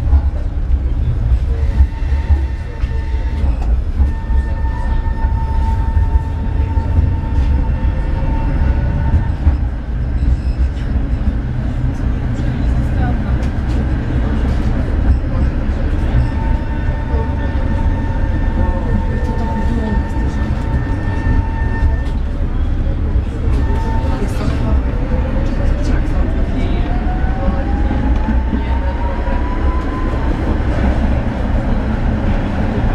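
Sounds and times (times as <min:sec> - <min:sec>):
tram wheels rumbling: 0:00.0 - 0:32.9.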